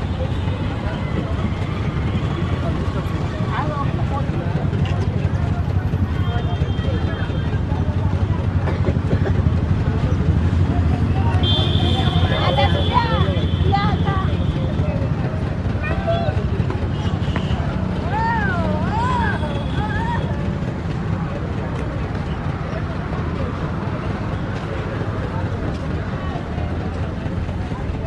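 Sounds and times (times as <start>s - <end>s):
road traffic rumble: 0.0s - 28.0s.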